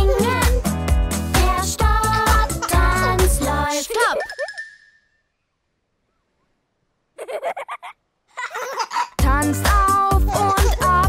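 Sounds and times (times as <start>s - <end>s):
cartoon child giggling: 2.4s - 4.6s, 7.2s - 9.2s, 10.2s - 11.0s.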